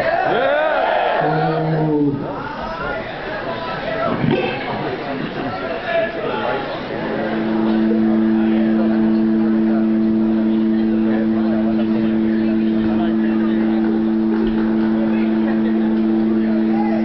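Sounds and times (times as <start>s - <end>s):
audience chatter: 0.0s - 17.0s
amplified instruments droning: 6.8s - 17.0s.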